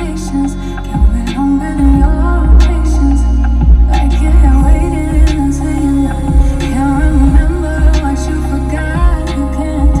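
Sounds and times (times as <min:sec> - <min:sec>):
music with deep bass beat: 0:00.0 - 0:10.0.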